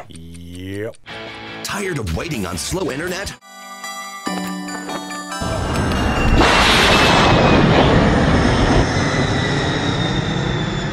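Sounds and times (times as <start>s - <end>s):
loud rushing whoosh: 6.0s - 10.0s
faint falling whistle: 6.1s - 10.9s.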